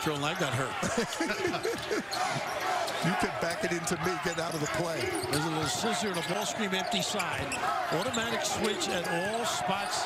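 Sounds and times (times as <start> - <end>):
arena crowd noise: 0.0 - 10.0
men laughing: 0.8 - 2.6.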